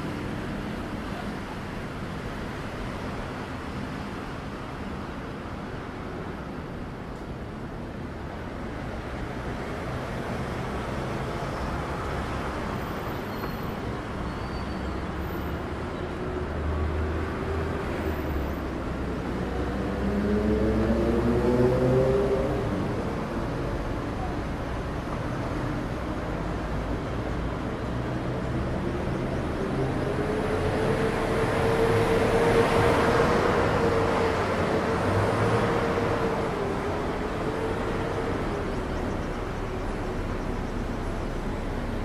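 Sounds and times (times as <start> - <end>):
traffic hum: 0.0 - 42.0
deep engine rumble: 37.0 - 42.0.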